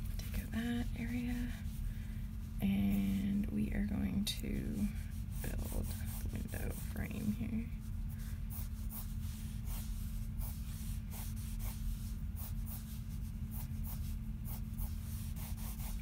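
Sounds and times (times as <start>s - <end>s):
low hum: 0.0s - 16.0s
pencil scratching on paper: 8.5s - 16.0s.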